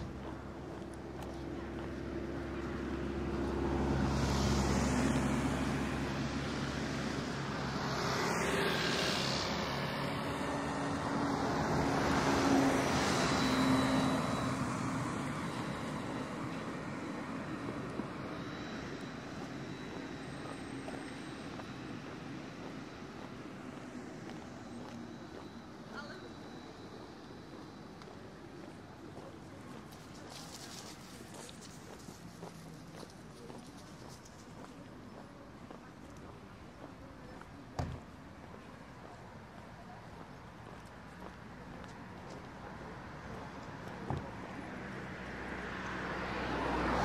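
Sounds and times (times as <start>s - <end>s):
road traffic passing: 0.0s - 47.0s
trolleybus passing close: 0.0s - 47.0s.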